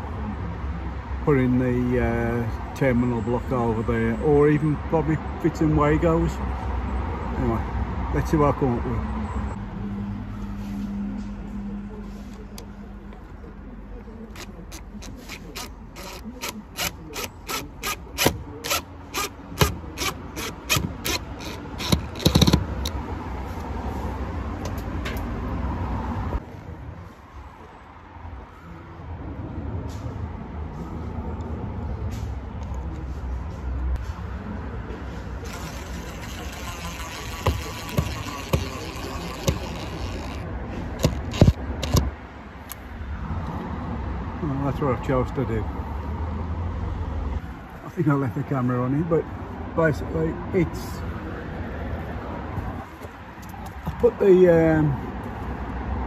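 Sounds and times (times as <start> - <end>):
screwdriver clicking on screw: 14.3 - 23.0, 35.5 - 40.4, 41.0 - 42.1.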